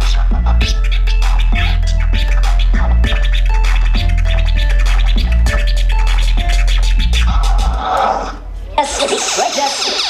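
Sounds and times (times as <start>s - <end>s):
beat with deep bass: 0.0s - 7.9s
vinyl record scratching: 0.0s - 10.0s.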